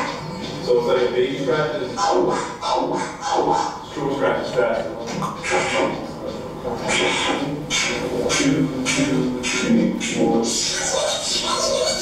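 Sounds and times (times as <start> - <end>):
voices: 0.0 - 12.0
beatboxing: 1.9 - 12.0.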